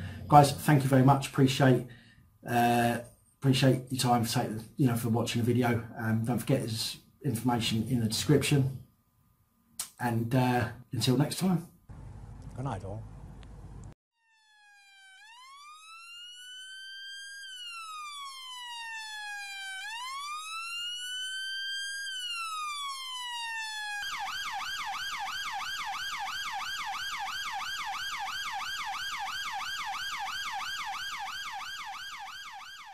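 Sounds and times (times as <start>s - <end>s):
electronic siren wailing and yelping: 14.2s - 32.9s.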